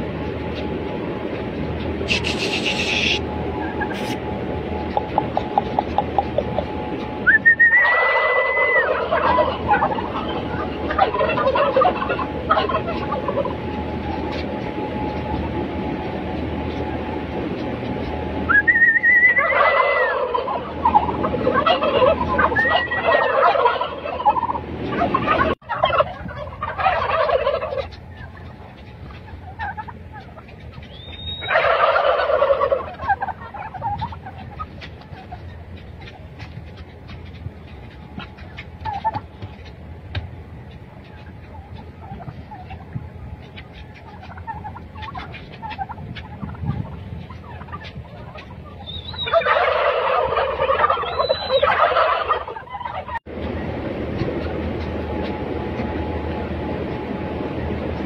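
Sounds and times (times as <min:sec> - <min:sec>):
turkeys gobbling: 0:00.0 - 0:58.0.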